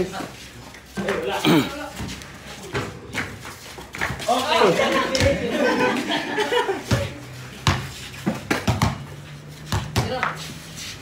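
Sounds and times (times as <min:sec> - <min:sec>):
basketball bouncing on concrete: 0:01.9 - 0:04.3, 0:05.1 - 0:05.5, 0:06.9 - 0:10.4.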